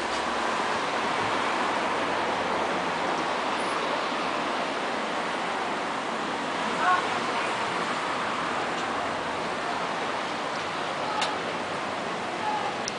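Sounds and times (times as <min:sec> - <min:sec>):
outdoor background rush: 0:00.0 - 0:12.9.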